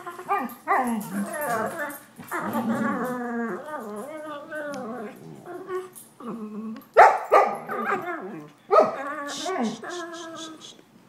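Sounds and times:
puppies barking: 7.0s - 8.1s, 8.7s - 9.8s.

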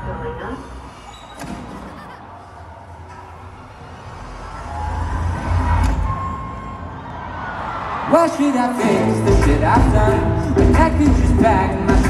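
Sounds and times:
crowd noise: 0.0s - 12.0s
deep bass swell: 3.2s - 6.9s.

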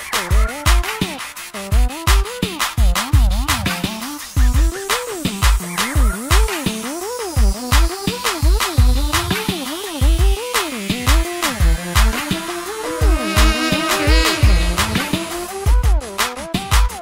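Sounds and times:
kick drum: 2.8s - 3.6s, 7.4s - 9.4s
sliding electronic melody: 10.6s - 15.7s.

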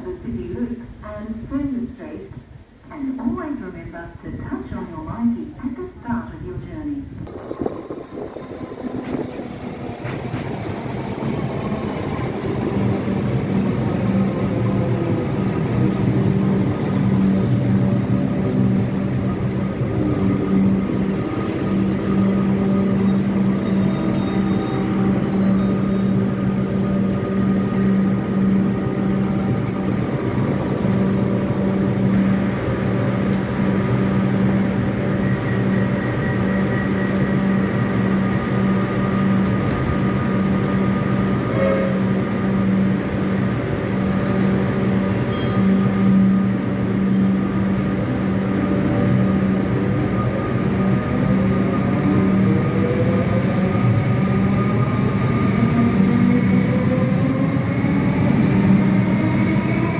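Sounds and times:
train electrical hum: 0.0s - 59.9s
train traction motor whine: 7.3s - 59.9s.

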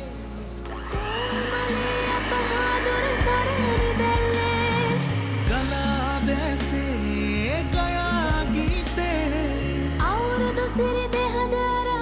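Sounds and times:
electric hand mixer running: 0.0s - 11.9s
background music: 0.0s - 12.0s.

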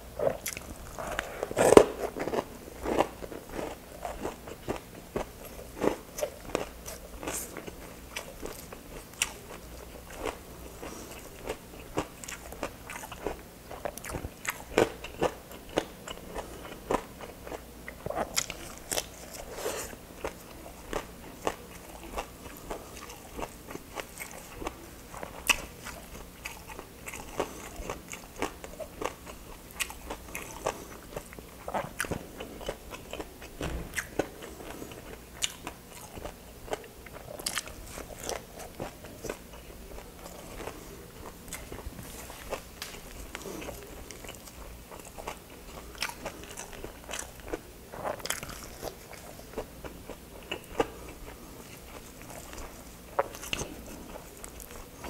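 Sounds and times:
person chewing crunchy food: 0.0s - 55.0s.

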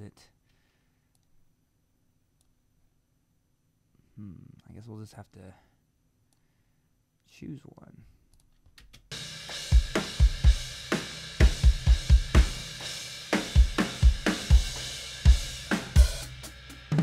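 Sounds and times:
cymbals washing: 9.1s - 17.0s
kick drum and snare hits: 9.7s - 12.8s.

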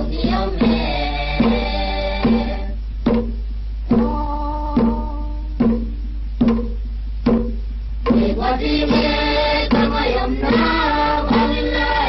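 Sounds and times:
steady drum beat: 0.0s - 12.0s
person singing: 8.2s - 12.0s.

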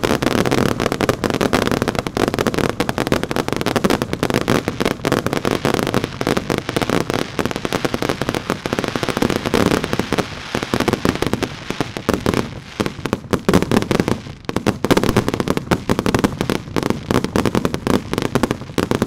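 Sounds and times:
fireworks bangs: 0.0s - 19.0s.

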